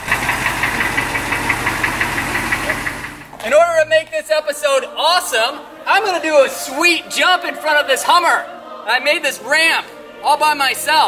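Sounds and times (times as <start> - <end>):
diesel engine idling: 0.0 - 4.4.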